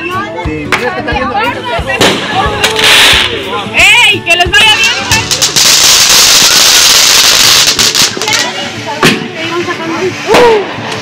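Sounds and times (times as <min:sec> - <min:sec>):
people's voices: 0:00.0 - 0:11.0
firework crackles: 0:01.9 - 0:03.5, 0:04.6 - 0:11.0
firework fountain hissing: 0:01.9 - 0:11.0.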